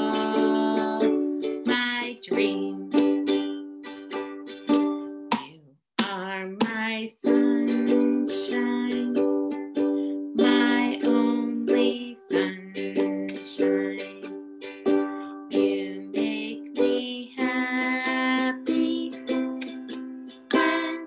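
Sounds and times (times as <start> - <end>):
ukulele strumming: 0.0 - 21.0.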